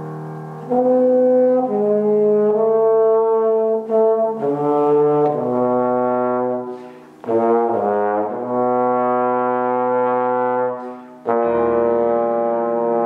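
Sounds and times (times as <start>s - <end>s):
trombone solo: 0.6s - 13.0s.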